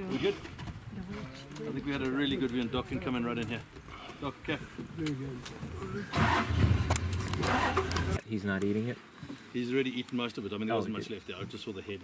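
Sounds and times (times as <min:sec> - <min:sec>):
vehicle engine starting and running: 0:06.1 - 0:08.2.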